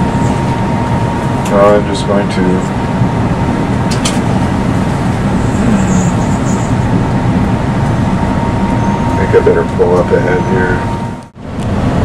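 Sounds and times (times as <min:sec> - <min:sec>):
bus engine and road rumble: 0:00.0 - 0:12.0
thin steady whine: 0:00.0 - 0:12.0.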